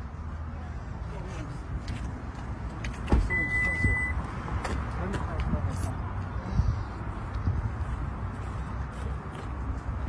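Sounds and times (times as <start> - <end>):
high electronic beep: 3.3 - 4.2.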